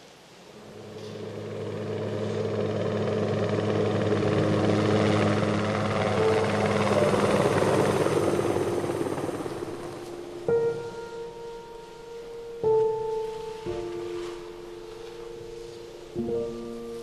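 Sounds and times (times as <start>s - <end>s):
low droning rumble with hiss: 0.1s - 17.0s.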